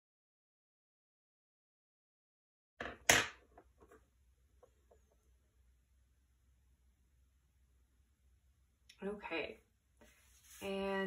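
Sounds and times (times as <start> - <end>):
pencils knocking on tabletop: 2.8 - 4.0.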